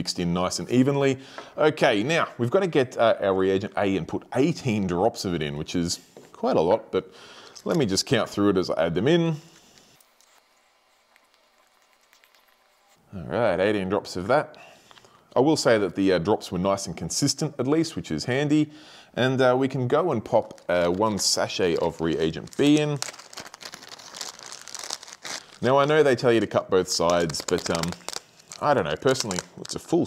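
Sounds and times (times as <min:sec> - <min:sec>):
plastic packaging crinkling: 0:10.0 - 0:13.0, 0:20.1 - 0:30.0.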